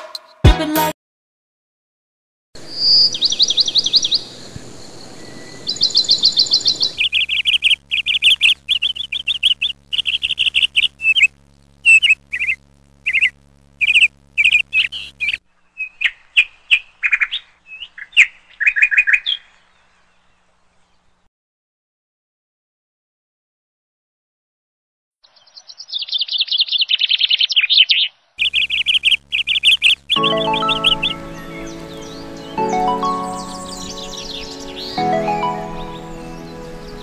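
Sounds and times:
small songbird chirping and trilling: 2.7s - 21.0s, 25.2s - 36.5s.

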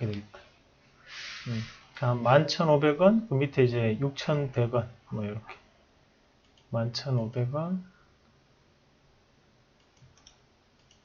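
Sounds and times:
computer mouse clicks: 6.4s - 6.7s, 9.8s - 11.0s.

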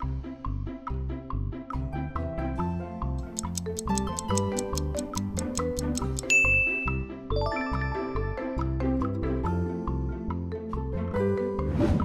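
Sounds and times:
upbeat background music: 0.0s - 12.0s
timer ticking: 3.2s - 7.0s
bright chime jingle: 6.2s - 8.6s
loud bell-like ding: 6.3s - 7.1s.

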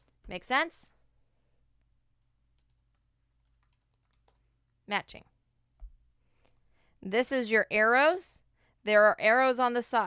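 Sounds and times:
room hum: 0.0s - 8.9s
woman speaking: 0.2s - 1.0s, 4.9s - 5.4s, 7.0s - 10.0s
fingers clicking on keyboard: 2.6s - 4.4s.

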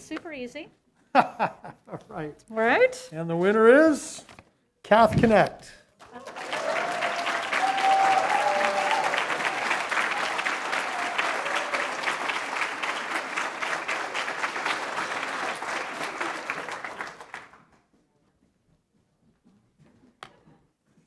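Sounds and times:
audience applauding: 6.0s - 17.7s.

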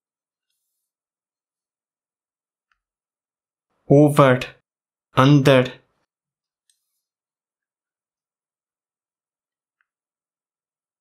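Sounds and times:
man speaking: 3.9s - 4.6s, 5.2s - 5.9s.

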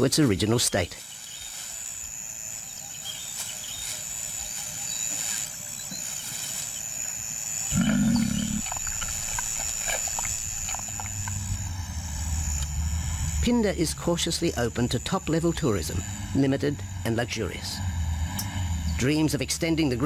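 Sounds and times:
high-pitched whine: 0.0s - 20.0s
lion cub growling: 7.7s - 12.8s.

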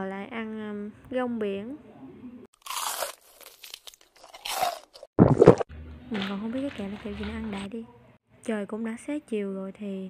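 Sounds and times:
crispy snack being bitten: 2.6s - 5.6s.

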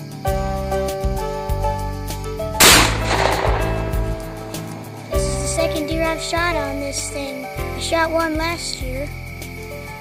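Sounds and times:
background music: 0.0s - 10.0s
rifle shot with echo: 2.6s - 5.1s.

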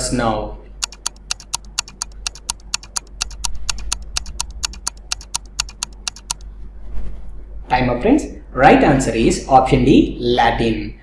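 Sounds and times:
fast even ticking: 0.8s - 6.5s.

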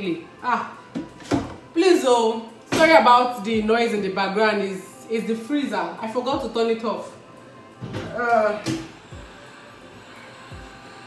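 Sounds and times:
freezer humming: 7.7s - 11.0s.

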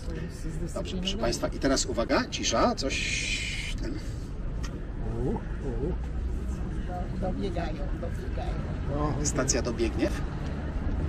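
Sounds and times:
low city traffic rumble: 0.0s - 11.0s.

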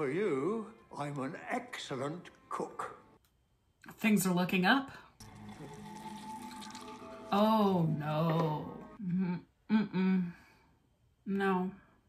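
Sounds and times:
gruel pouring into bowl: 5.2s - 7.4s.

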